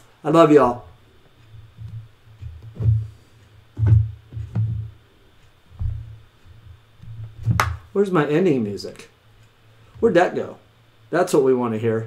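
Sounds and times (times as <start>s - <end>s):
drum machine bass thumps: 1.6s - 5.0s.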